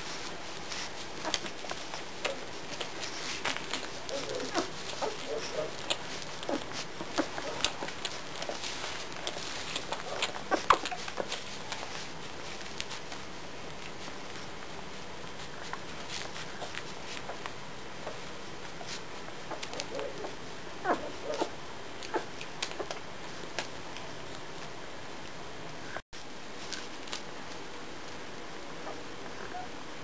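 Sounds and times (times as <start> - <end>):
puppies suckling wet clicks: 0.6 - 14.7, 15.3 - 20.3, 20.9 - 24.7.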